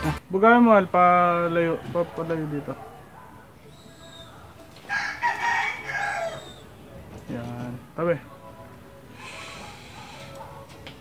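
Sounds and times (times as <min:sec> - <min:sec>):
rooster crowing: 0:04.8 - 0:06.6.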